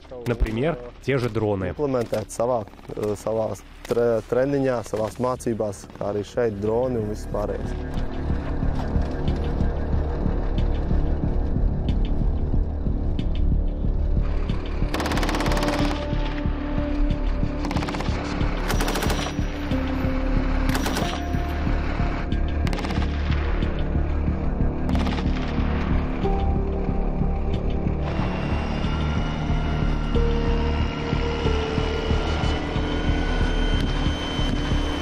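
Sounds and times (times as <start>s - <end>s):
background music: 0.0s - 35.0s
low hum: 5.7s - 35.0s.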